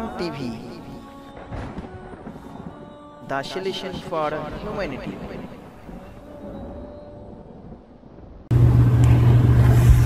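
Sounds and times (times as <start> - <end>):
loud low hum with hiss: 8.5 - 10.0.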